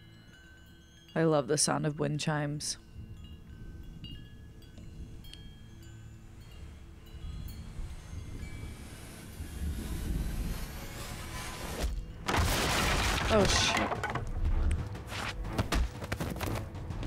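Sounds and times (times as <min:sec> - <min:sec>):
wind chimes tinkling: 0:00.0 - 0:10.8.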